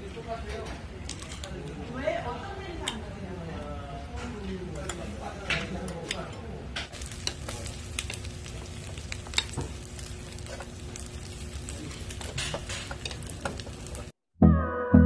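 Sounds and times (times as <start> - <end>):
food sizzling in frying: 6.9 - 14.2
background music with steady beat: 14.4 - 15.0.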